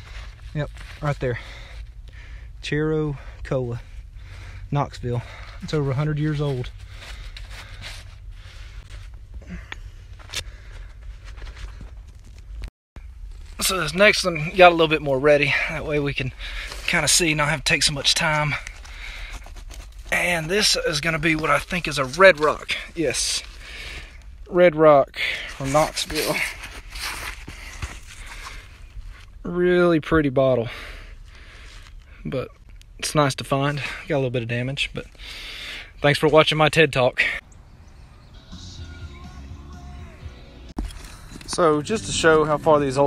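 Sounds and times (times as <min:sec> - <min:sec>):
rustling and scraping on phone: 0:05.6 - 0:14.6, 0:16.5 - 0:24.4, 0:25.6 - 0:29.4, 0:40.8 - 0:41.7
low rumble on microphone: 0:39.5 - 0:43.0.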